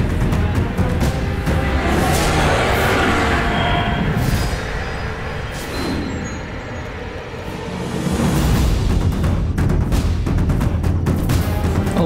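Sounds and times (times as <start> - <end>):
brief whoosh: 1.0 - 8.7.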